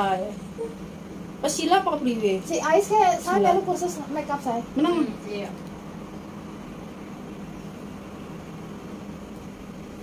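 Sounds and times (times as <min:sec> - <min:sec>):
steady background hum with hiss: 0:00.0 - 0:10.0.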